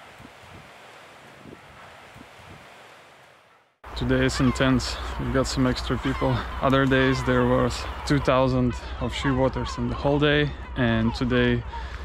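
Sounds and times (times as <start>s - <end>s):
sea surf on rocks: 0.0s - 3.3s
wind: 0.0s - 12.0s.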